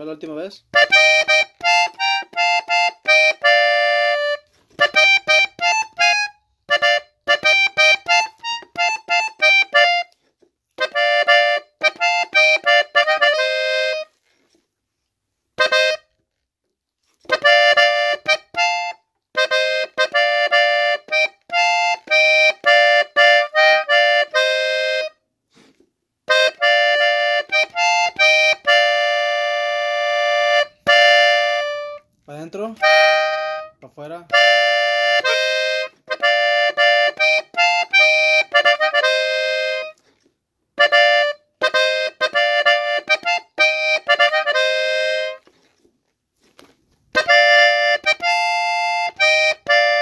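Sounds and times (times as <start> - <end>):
button accordion melody: 0.7 - 14.6, 15.5 - 16.4, 17.2 - 50.0.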